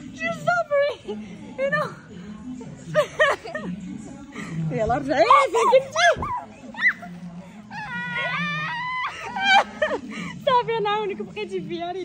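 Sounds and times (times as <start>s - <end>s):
high-pitched squeal of laughter: 5.6s - 7.1s, 7.7s - 9.9s.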